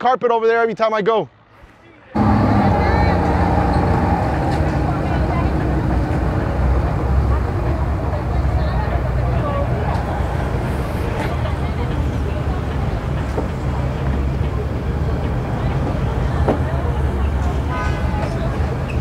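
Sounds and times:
faint background voices: 1.6s - 19.0s
boat engines idling: 2.2s - 19.0s.

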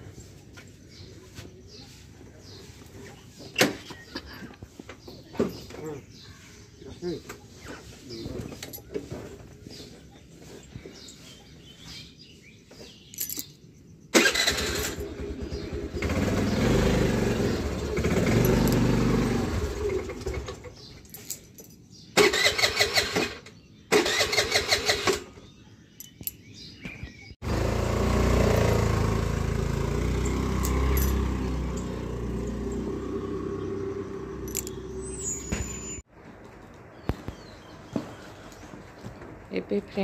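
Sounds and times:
scooter engine starting and running: 14.1s - 21.0s, 22.2s - 25.5s, 27.4s - 36.1s
engine droning: 14.2s - 21.4s, 27.4s - 36.8s.

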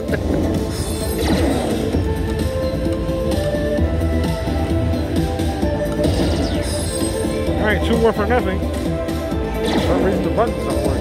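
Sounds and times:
slot machine bonus music: 0.0s - 11.0s.

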